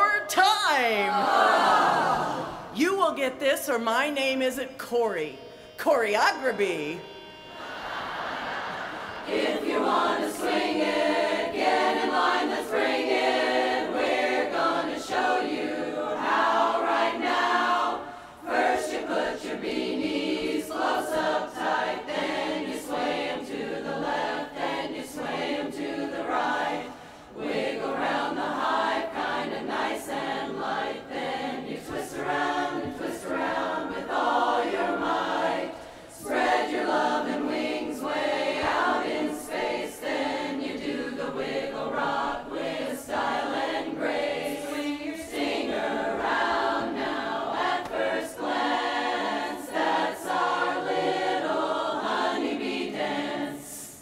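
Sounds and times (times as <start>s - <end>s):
women's chorus singing a cappella: 0.0s - 2.9s, 6.7s - 54.0s.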